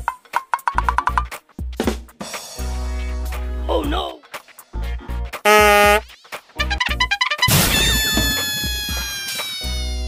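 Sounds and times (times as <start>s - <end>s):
background music with bass line: 0.0s - 10.0s
cartoon cat meow falling in pitch: 7.6s - 10.0s.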